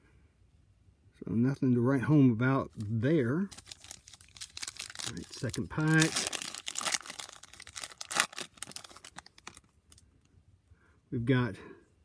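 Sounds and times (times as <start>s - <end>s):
foil wrapper tearing and crinkling: 3.5s - 10.0s.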